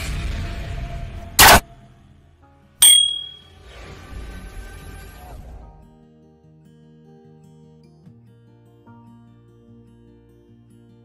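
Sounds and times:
bright bell ding: 2.8s - 3.6s.

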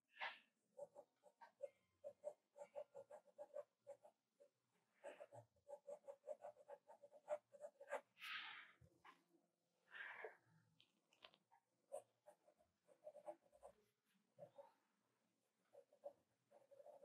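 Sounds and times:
pencil scratching on paper: 0.1s - 9.3s, 10.3s - 17.0s.

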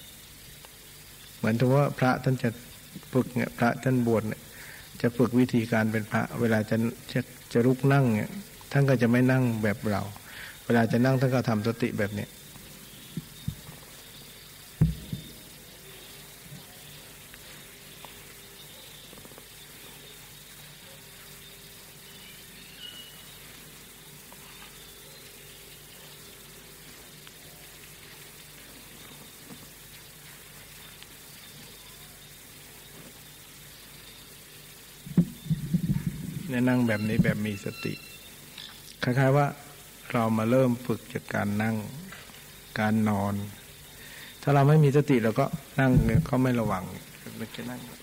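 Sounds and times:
background hiss: 0.0s - 48.0s
faint low hum: 0.0s - 48.0s
short low thump: 14.8s - 15.4s, 35.1s - 36.5s, 46.0s - 46.3s.

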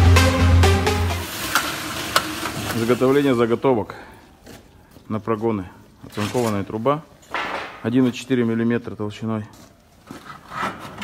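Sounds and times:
electronic background music: 0.0s - 1.6s
metalworking shop hiss: 0.2s - 4.1s
man speaking: 2.8s - 4.1s, 7.8s - 9.6s.

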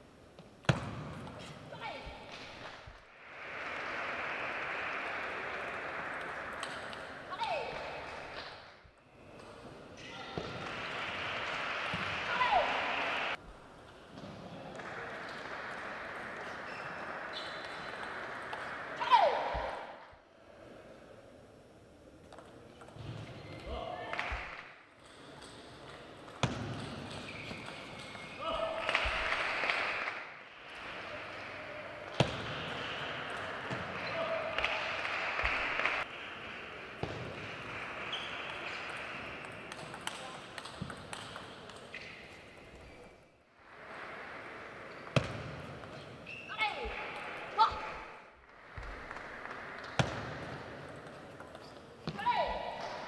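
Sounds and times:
steady hall hiss: 0.0s - 27.0s, 27.7s - 53.0s
shoe soles squeaking on floor: 27.0s - 28.4s, 38.1s - 38.7s, 46.0s - 47.0s.

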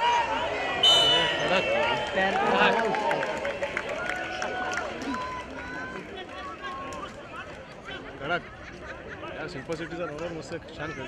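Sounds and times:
people calling and chattering: 0.0s - 11.0s.

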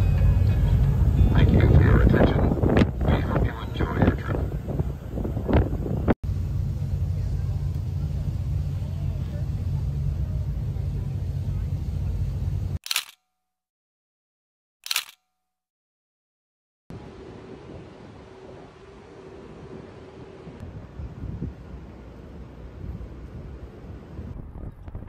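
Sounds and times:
boat low rumble: 0.0s - 12.8s, 16.9s - 25.0s
camera shutter clicks: 12.8s - 13.2s, 14.8s - 15.3s.

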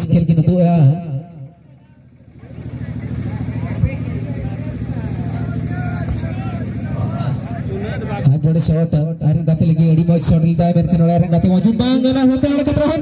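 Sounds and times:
faint distant voices: 1.6s - 8.2s.

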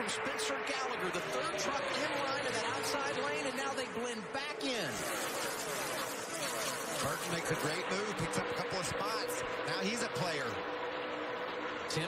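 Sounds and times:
race truck engines passing by: 0.0s - 12.0s.

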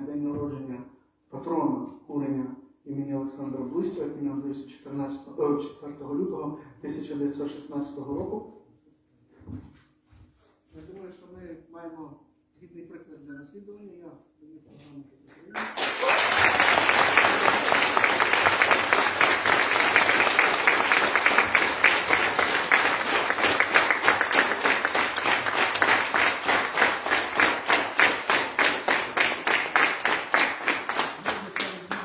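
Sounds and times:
rhythmic clapping in unison: 15.5s - 32.0s
audience applauding: 15.6s - 32.0s.

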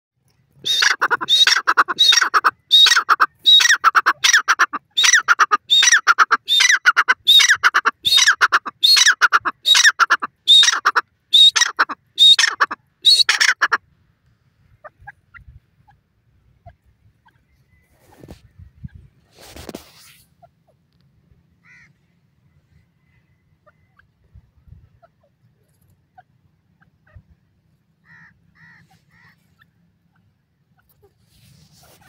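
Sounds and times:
francolin harsh repeated calls: 0.6s - 13.8s.

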